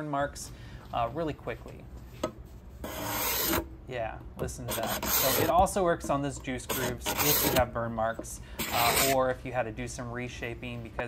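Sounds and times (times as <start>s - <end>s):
card scraper scraping wood: 2.8s - 3.7s, 4.6s - 5.7s, 6.6s - 7.7s, 8.6s - 9.2s.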